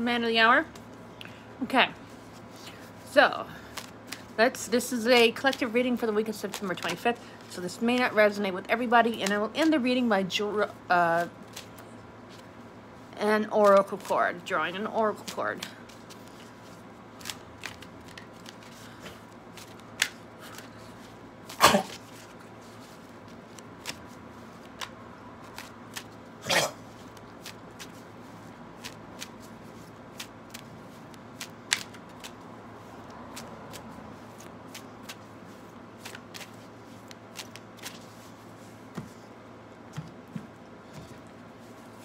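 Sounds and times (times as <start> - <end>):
cards being shuffled by hand: 1.9 - 42.0.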